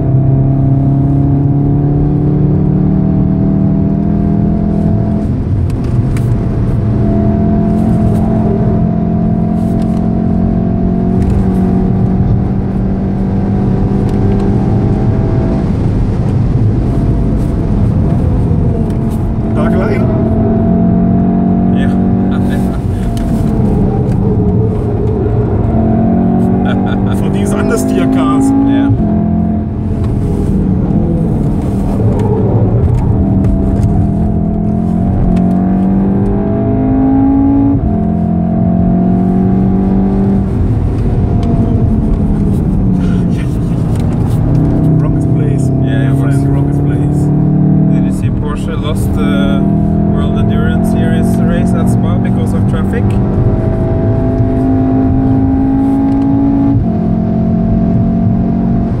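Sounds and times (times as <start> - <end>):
car engine revving through gears: 0.0 - 59.0
tyre and road rumble: 0.0 - 59.0.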